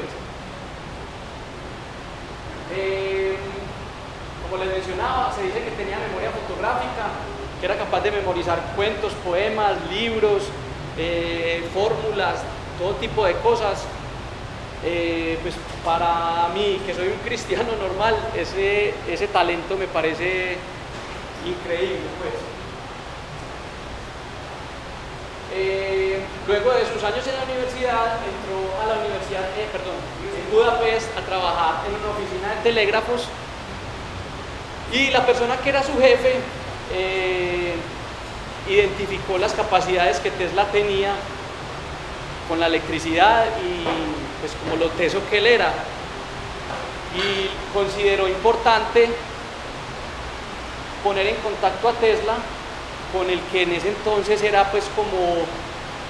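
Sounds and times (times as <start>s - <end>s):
steady room hiss: 0.0s - 56.0s
man's voice: 14.8s - 20.6s, 21.4s - 22.6s, 25.5s - 33.4s, 42.5s - 45.9s.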